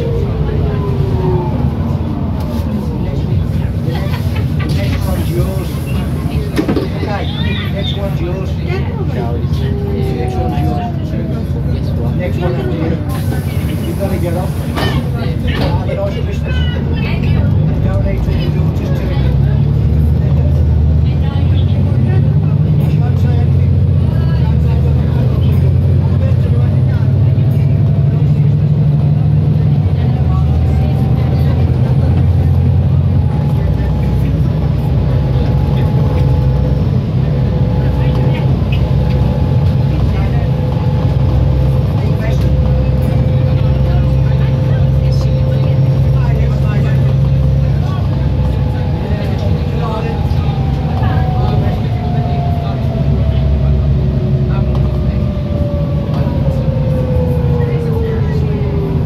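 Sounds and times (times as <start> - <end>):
bus engine drone with whine: 0.0 - 59.0.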